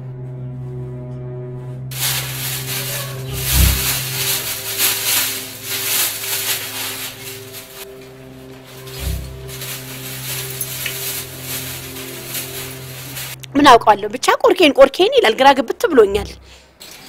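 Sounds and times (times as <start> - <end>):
sustained background music: 0.0 - 16.6
plastic bags rustling: 1.9 - 13.4.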